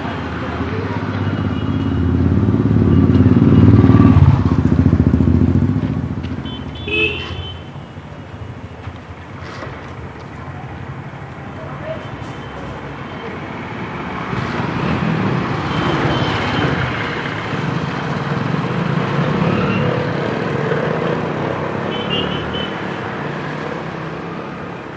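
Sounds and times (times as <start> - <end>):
motorbikes and scooters passing: 0.0 - 24.9.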